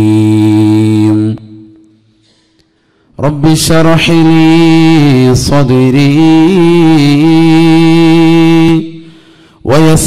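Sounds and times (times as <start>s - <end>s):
man chanting melodic recitation: 0.0s - 1.8s, 3.2s - 9.0s, 9.6s - 10.0s.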